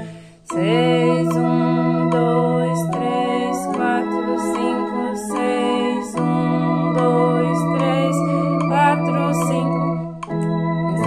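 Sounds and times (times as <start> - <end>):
organ playing a hymn: 0.0 - 11.0.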